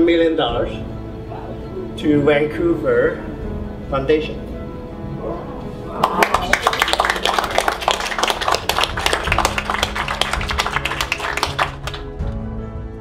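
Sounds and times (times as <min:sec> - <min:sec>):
soft background music: 0:00.0 - 0:13.0
people clapping: 0:05.9 - 0:12.4.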